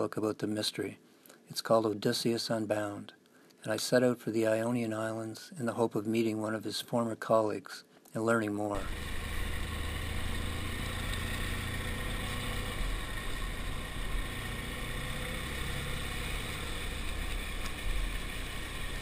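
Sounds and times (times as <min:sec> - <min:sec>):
motorcycle engine running: 0:08.8 - 0:19.0
wind and road noise: 0:08.8 - 0:19.0.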